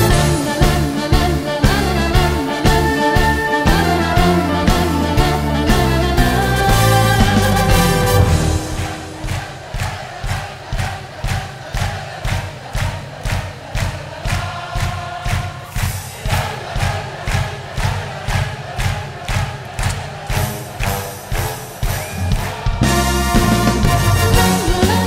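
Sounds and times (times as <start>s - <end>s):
music with bass-drum beat: 0.0s - 11.0s, 20.0s - 25.0s
crowd singing along: 0.0s - 25.0s
crowd clapping in time: 7.3s - 25.0s.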